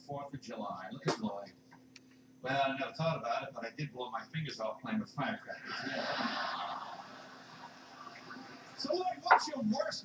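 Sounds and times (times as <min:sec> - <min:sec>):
studio audience laughing: 0:05.5 - 0:08.8.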